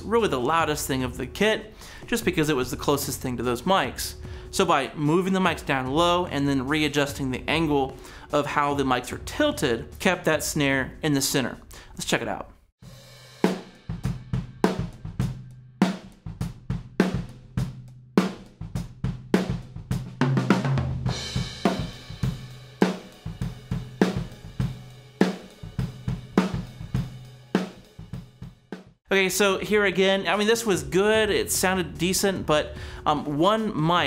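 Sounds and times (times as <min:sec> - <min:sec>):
drum kit playing beat: 0:00.0 - 0:11.2, 0:12.8 - 0:34.0
crash cymbal: 0:12.8 - 0:15.6.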